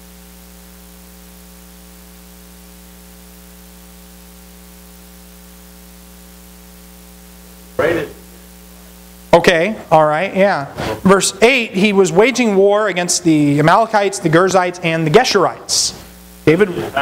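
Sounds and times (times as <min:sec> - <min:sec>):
electrical mains hum: 0:00.0 - 0:17.0
person speaking: 0:07.7 - 0:08.4, 0:09.3 - 0:17.0.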